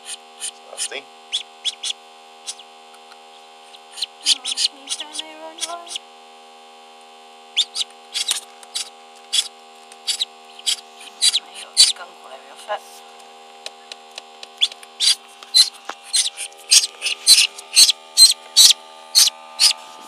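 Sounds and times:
duckling peeping: 0.0 - 2.7, 3.6 - 6.0, 7.5 - 12.0, 13.7 - 19.8
incubator electrical hum: 0.0 - 20.0.

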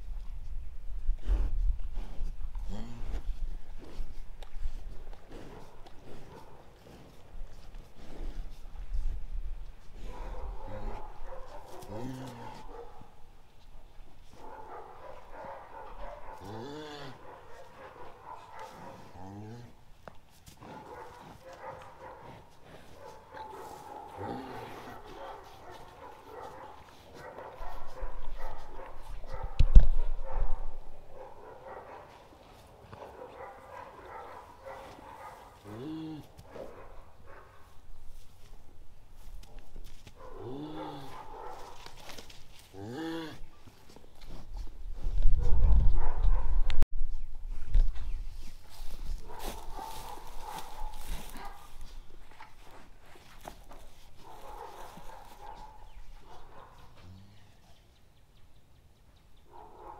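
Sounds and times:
cow calling: 10.6 - 13.0, 34.8 - 36.4.

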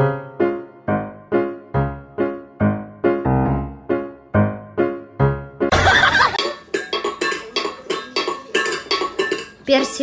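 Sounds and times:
steel bowl clinking on tile floor: 6.3 - 10.0.

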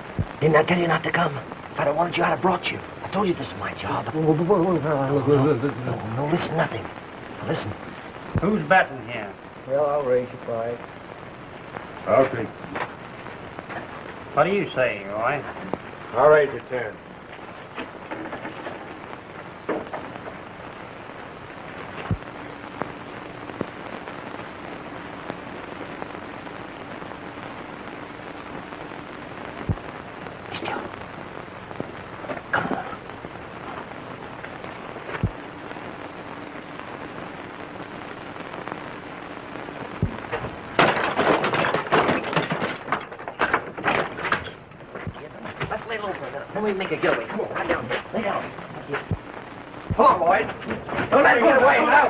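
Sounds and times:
film soundtrack hiss: 0.0 - 52.0.

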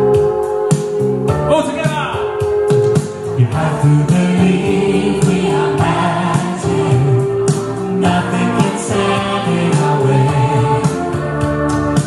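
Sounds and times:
accompanying music: 0.0 - 12.0
man singing into microphone: 3.4 - 7.2
choir-like voices: 3.4 - 12.0.

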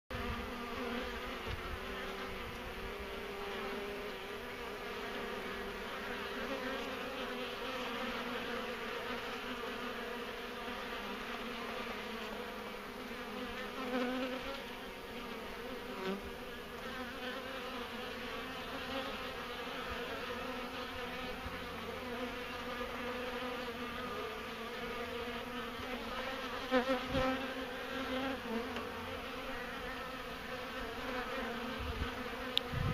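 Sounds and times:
bees buzzing: 0.1 - 32.9.

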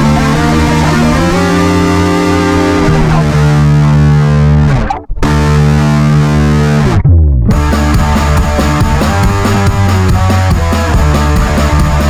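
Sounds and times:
bass guitar: 0.0 - 12.0
distorted electric guitar chords: 0.0 - 12.0.

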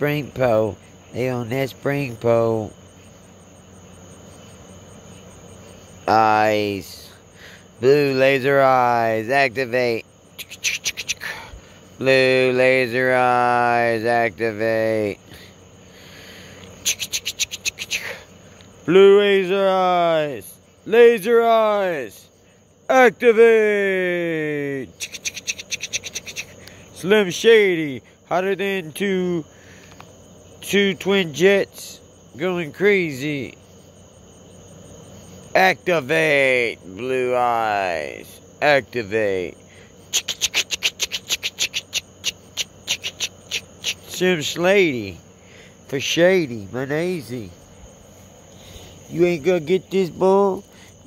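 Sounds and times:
cricket chirping: 0.0 - 51.0
faint steady hiss: 0.0 - 51.0.

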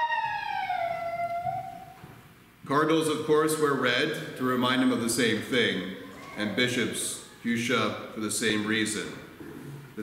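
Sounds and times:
siren wailing: 0.0 - 1.8.

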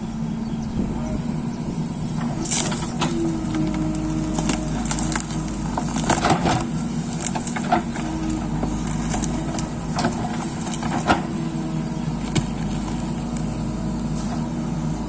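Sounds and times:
diesel engine under load: 0.0 - 15.0.

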